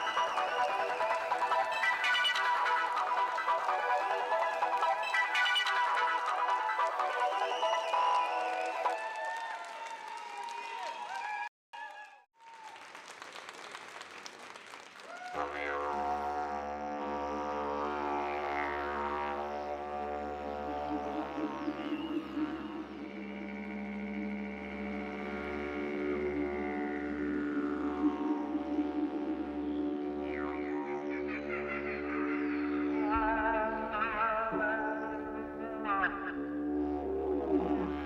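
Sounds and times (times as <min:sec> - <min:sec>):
didgeridoo drone: 0:00.0 - 0:08.8, 0:15.4 - 0:38.0.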